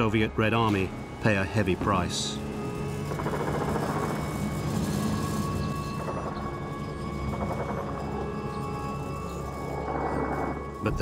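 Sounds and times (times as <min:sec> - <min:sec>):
music drone: 0:00.0 - 0:11.0
vehicle engines rumbling: 0:00.0 - 0:11.0.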